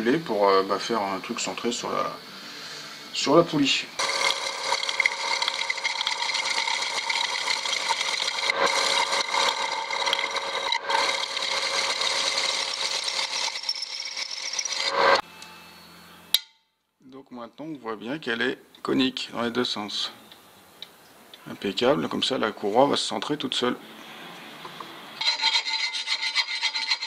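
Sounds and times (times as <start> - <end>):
metal lathe cutting with whine: 4.0 - 15.2.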